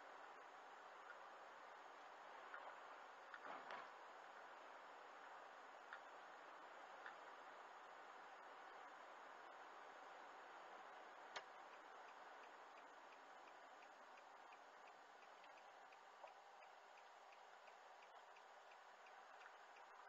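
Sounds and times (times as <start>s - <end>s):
turn signal ticking: 10.2s - 20.0s.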